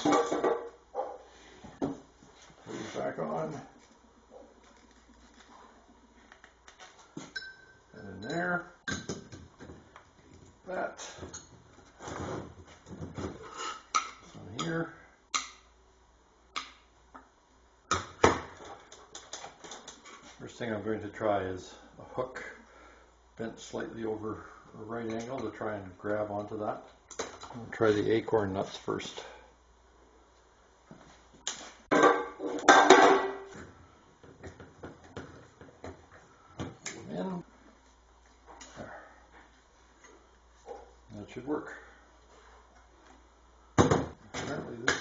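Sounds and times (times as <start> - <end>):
glass jar and metal clinking: 7.2 - 9.2.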